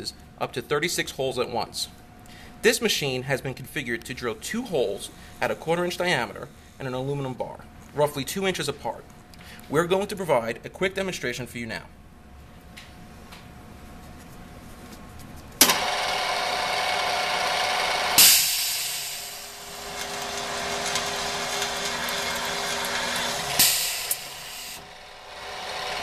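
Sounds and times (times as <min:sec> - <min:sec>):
drilling machine whining: 0:15.6 - 0:26.0
sharp drilling burst: 0:15.7 - 0:26.0.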